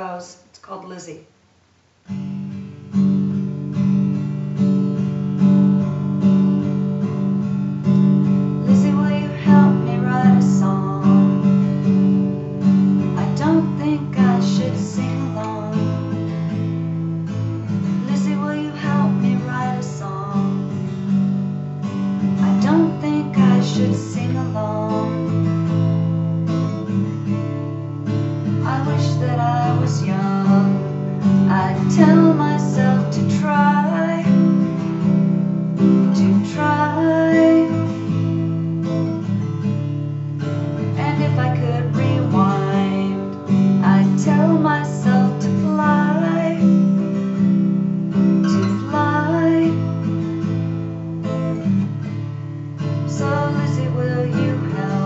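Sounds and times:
acoustic guitar strumming chords: 2.1s - 55.0s.

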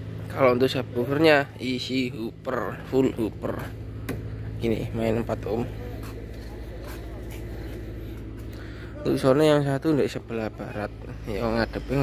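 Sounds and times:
diesel generator running: 0.0s - 12.0s.

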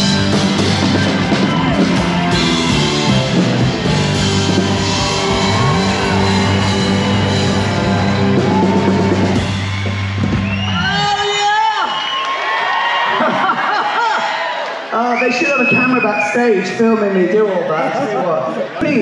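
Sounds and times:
live rock band playing: 0.0s - 11.4s
audience cheering and whooping: 0.0s - 16.7s.

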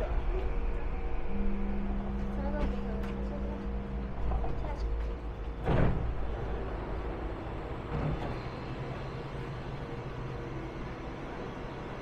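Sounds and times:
low hum of train: 0.0s - 12.0s
train sliding doors opening: 2.1s - 12.0s.

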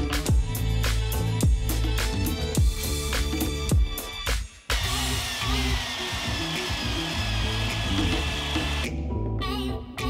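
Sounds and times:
background music: 0.0s - 10.0s
electric motor whining: 4.7s - 8.9s.

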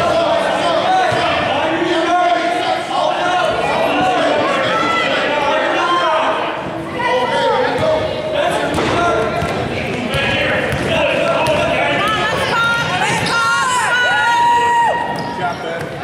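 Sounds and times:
sneakers squeaking: 7.7s - 14.0s, 14.9s - 16.0s.

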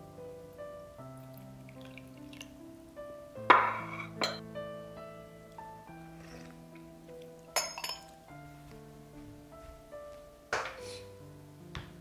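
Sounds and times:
background music: 0.0s - 12.0s
glass cup clinking: 3.5s - 4.4s, 7.5s - 8.2s.

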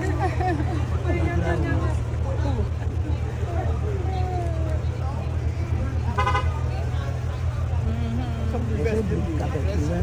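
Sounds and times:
people talking: 0.0s - 10.0s
car horn toot: 6.1s - 6.6s.

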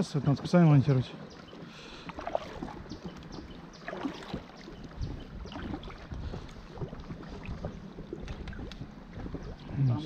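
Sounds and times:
paddles splashing in water: 0.0s - 10.0s
low wind rumble: 2.1s - 10.0s.

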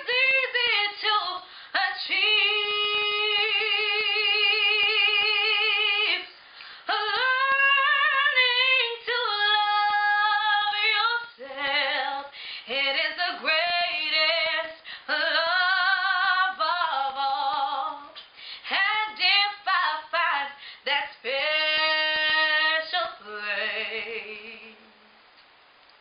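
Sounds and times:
woman singing unaccompanied: 0.0s - 25.0s.

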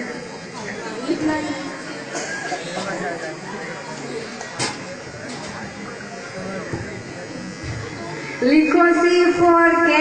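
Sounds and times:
faint indistinct voices: 0.0s - 10.0s
steady buzz: 0.0s - 10.0s.

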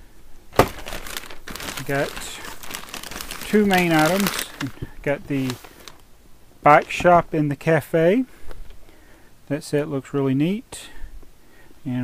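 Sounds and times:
plastic bag crinkling: 0.6s - 6.0s.

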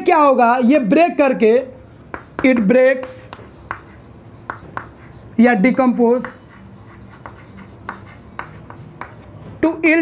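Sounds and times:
chalk writing on chalkboard: 1.6s - 9.6s.

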